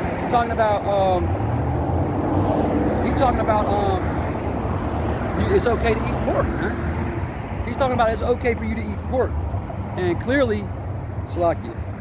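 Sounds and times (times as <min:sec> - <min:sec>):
distant engine rumble: 0:00.0 - 0:12.0.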